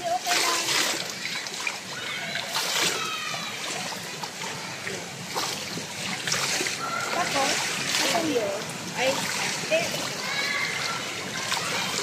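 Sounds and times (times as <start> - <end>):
pool water splashing: 0.0 - 12.0.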